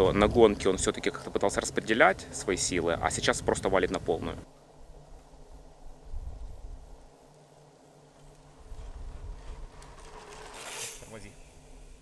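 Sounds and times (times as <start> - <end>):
short hiss: 10.3 - 12.0.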